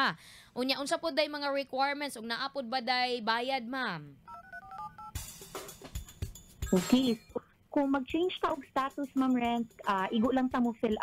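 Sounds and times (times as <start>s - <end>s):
telephone keypad tones: 4.3s - 5.2s.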